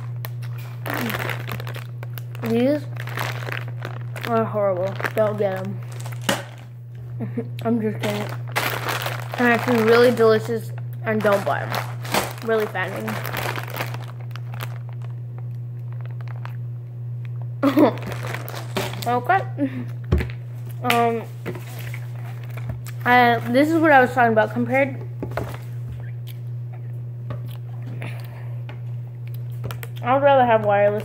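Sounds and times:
plastic bag crinkling: 0.0 - 6.7, 7.9 - 16.6, 17.6 - 19.4, 21.3 - 24.3
steady low hum: 0.0 - 31.0.

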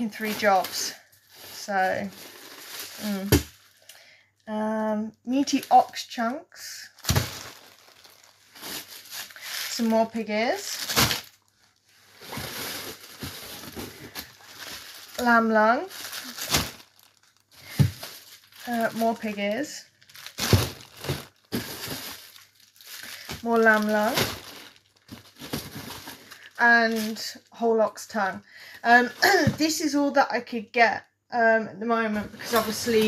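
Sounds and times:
plastic wrapping crinkling: 0.0 - 4.0, 5.3 - 30.0, 32.2 - 33.0
frozen meat block thump: 20.2 - 22.2.

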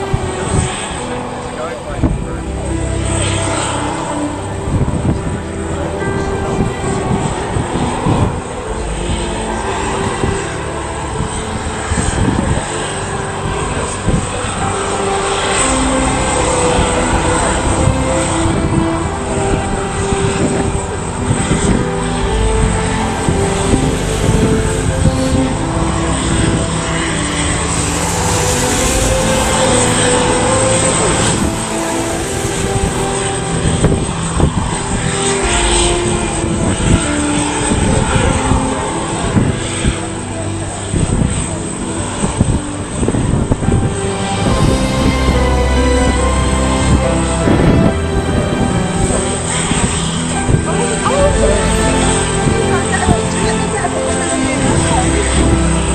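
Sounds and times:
jet engines running: 0.0 - 55.9
music playing: 0.0 - 55.9.

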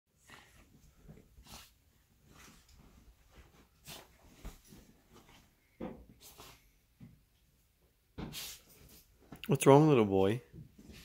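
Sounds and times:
rustling of bedding: 0.1 - 9.4, 10.5 - 11.0.

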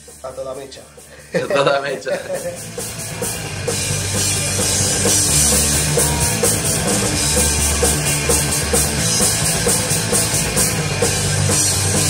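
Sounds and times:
drum kit beat: 0.0 - 12.0
punk rock band playing: 0.0 - 12.0.

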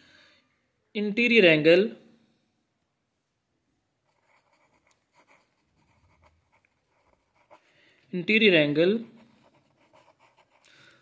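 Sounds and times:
pen scratching on paper: 4.0 - 7.7, 9.0 - 10.7.

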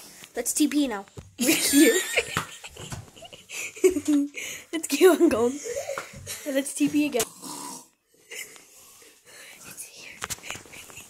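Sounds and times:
child giggling: 1.4 - 6.0.

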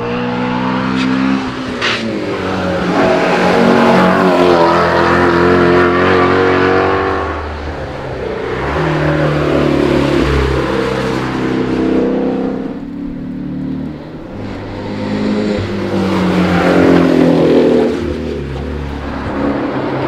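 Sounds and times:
car engine accelerating hard: 0.0 - 20.0.

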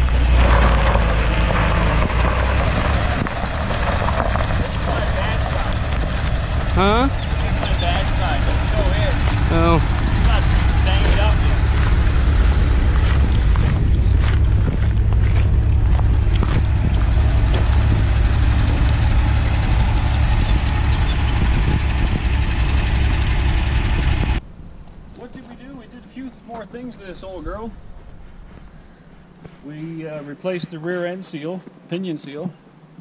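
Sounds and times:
truck engine driving on gravel: 0.0 - 30.7.

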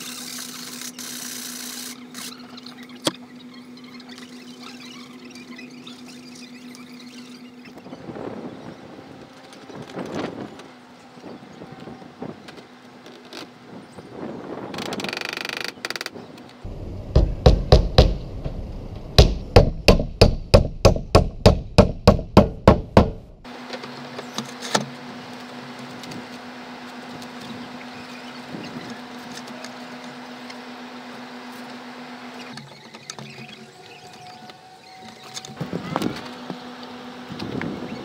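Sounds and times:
hammer driving nails: 19.2 - 23.2.

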